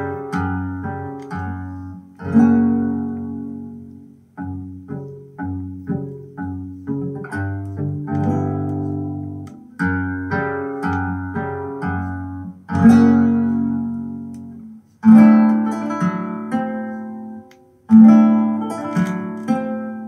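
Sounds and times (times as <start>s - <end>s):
flamenco guitar record: 0.0s - 20.0s.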